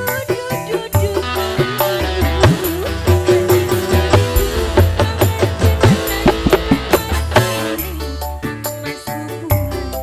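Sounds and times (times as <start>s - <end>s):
bass line and beat: 1.0s - 8.5s.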